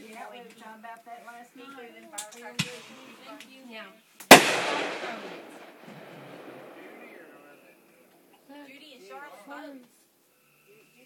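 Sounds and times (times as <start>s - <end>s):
firework shell bang: 4.3s - 7.3s
long echo: 4.3s - 8.4s.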